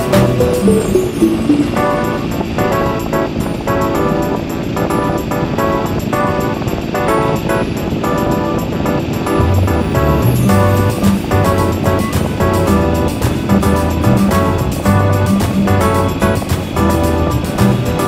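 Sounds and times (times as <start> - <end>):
repeated short music chords: 0.0 - 2.8.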